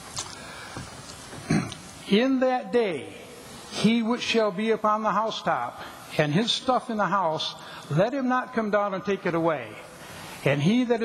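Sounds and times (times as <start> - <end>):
man breathing in: 0.3 - 0.9, 10.0 - 10.4.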